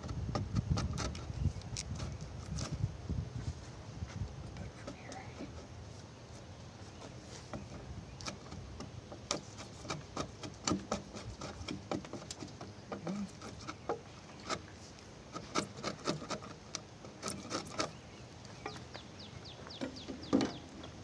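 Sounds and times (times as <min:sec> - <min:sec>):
blade shaving wood: 0:08.2 - 0:18.0.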